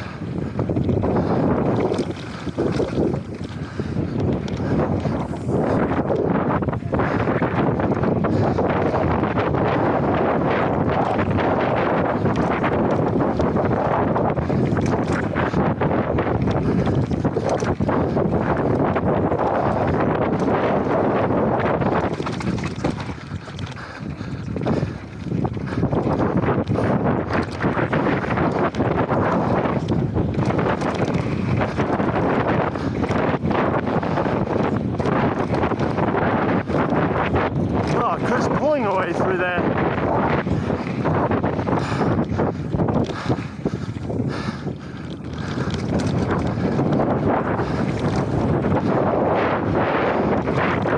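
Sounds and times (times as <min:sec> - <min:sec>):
bike rattling: 0:00.0 - 0:50.9
wind rushing over microphone: 0:00.0 - 0:50.9.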